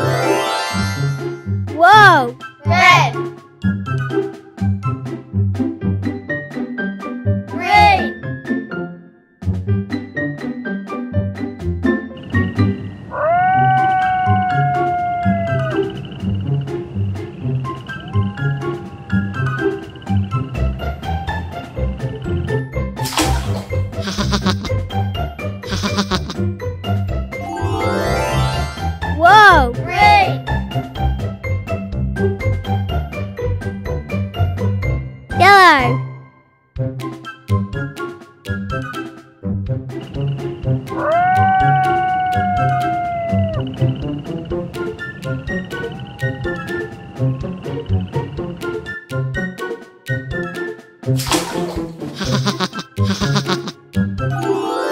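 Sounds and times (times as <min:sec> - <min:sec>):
light children's music with beat: 0:00.0 - 0:12.7, 0:19.6 - 0:36.2, 0:36.8 - 0:54.9
wolf howl sound effect: 0:13.1 - 0:15.9, 0:41.0 - 0:43.7
long animal cry: 0:25.7 - 0:26.4, 0:52.2 - 0:53.7
background music with beat: 0:36.8 - 0:40.9.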